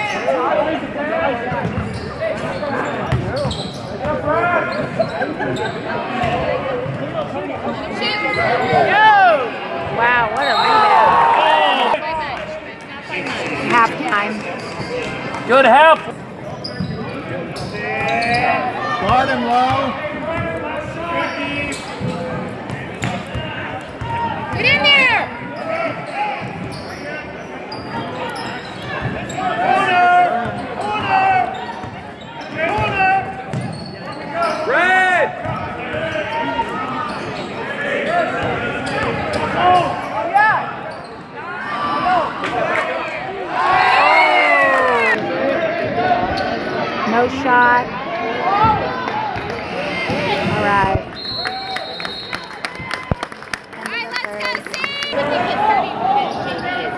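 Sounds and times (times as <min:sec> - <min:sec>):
spectators chattering: 0:00.0 - 0:56.9
sneaker squeaks: 0:01.6 - 0:07.0, 0:08.1 - 0:08.9, 0:14.6 - 0:15.2, 0:16.4 - 0:20.5, 0:21.1 - 0:23.4, 0:24.0 - 0:29.7, 0:30.4 - 0:34.8, 0:35.4 - 0:37.7, 0:38.4 - 0:40.2, 0:40.8 - 0:41.4.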